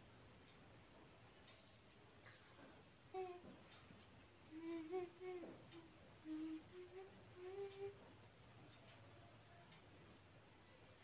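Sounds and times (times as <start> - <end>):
woman humming a tune: 3.1 - 3.8, 4.5 - 8.2.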